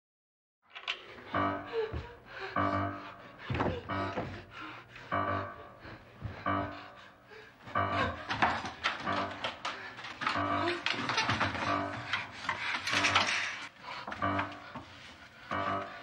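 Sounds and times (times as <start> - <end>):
tense repeated pitched notes: 1.1 - 16.0.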